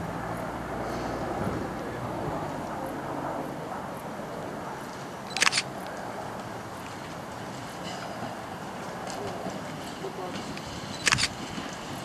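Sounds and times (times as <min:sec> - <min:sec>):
diesel railcar engine rumble: 0:00.0 - 0:12.0
sharp clicks of wheels: 0:04.8 - 0:12.0.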